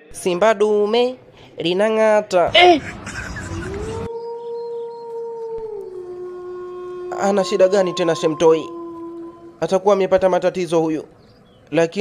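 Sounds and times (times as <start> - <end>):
rushing noise: 2.5 - 4.1
eerie howl: 3.3 - 11.3.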